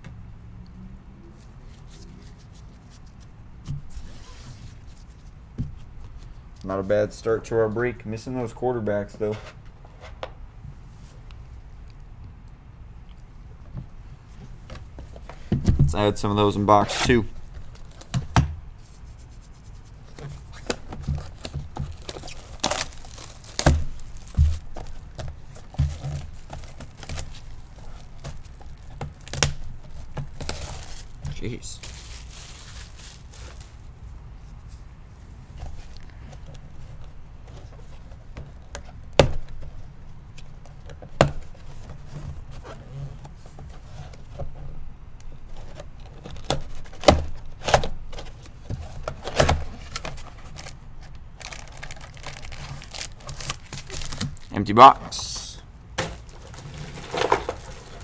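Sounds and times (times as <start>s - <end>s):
cardboard rubbing: 16.7s - 33.9s
wrapper crinkling and tearing: 20.3s - 33.9s, 49.8s - 54.7s.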